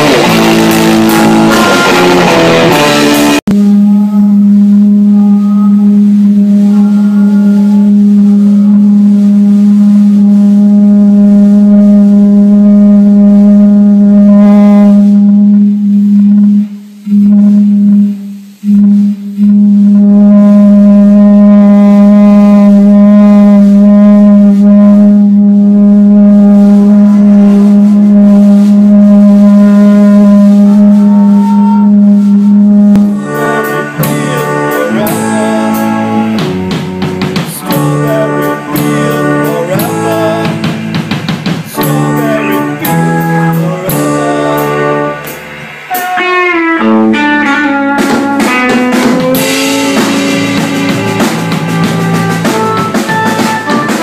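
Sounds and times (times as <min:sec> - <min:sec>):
drums: 0:00.0 - 0:54.0
electric guitar: 0:00.0 - 0:54.0
loud amplified low drone: 0:00.0 - 0:54.0.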